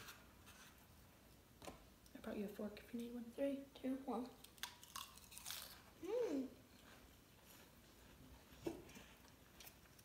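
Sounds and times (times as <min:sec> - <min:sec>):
chewing crisp lettuce: 0:04.4 - 0:06.1.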